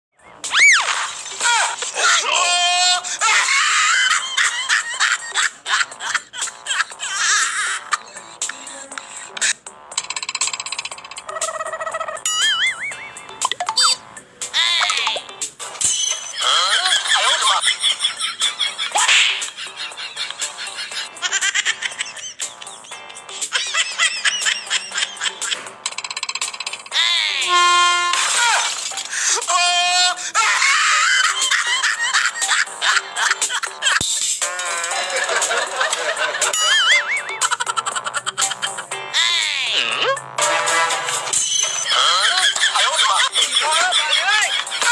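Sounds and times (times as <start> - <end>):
person screaming: 1.4 - 4.0, 29.4 - 31.1.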